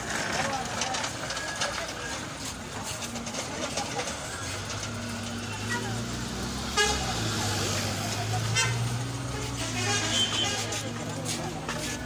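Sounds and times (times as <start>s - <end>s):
street crowd chatter: 0.0s - 12.0s
vehicle horn toots: 6.6s - 7.2s, 8.5s - 10.8s.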